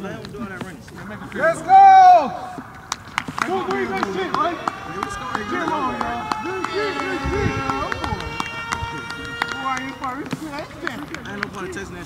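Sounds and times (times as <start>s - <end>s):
voices shouting across field: 1.4s - 11.8s.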